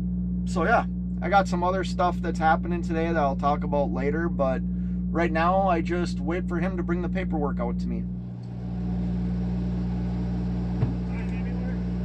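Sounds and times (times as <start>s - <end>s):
diesel engine idling: 8.0s - 12.0s.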